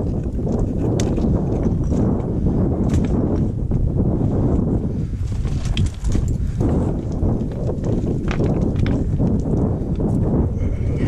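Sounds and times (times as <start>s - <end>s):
boot cracking on stone: 0.0s - 3.3s, 5.3s - 9.6s
wind rumble on microphone: 0.0s - 11.0s
boots stepping on scree: 5.3s - 9.5s.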